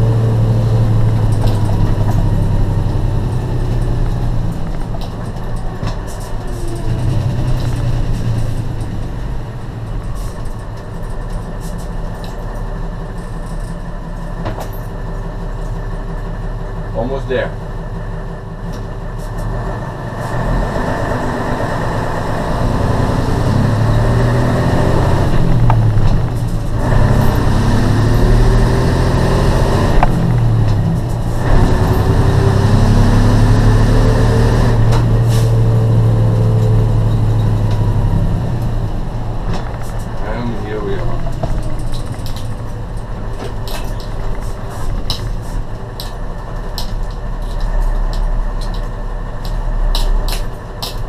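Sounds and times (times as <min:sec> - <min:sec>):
truck diesel engine accelerating: 0:00.0 - 0:51.0.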